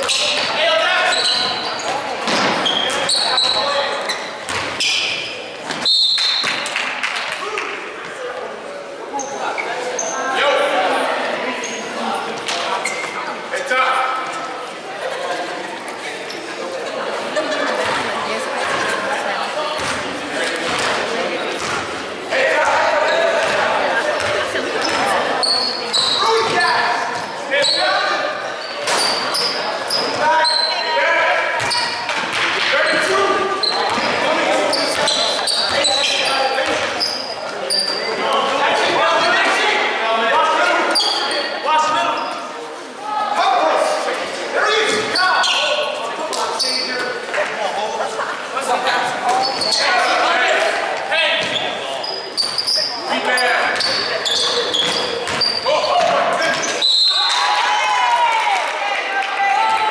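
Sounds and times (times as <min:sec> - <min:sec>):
echoing chatter and shouts: 0:00.0 - 0:59.9.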